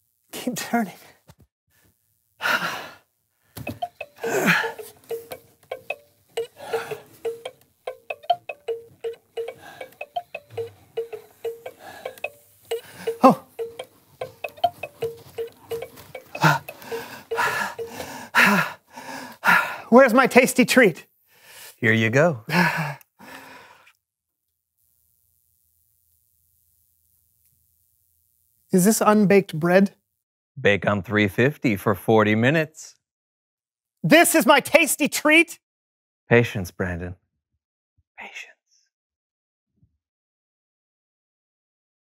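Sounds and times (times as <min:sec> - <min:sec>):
tinkling music box tune: 0:03.7 - 0:18.0
man sighing: 0:04.2 - 0:04.8.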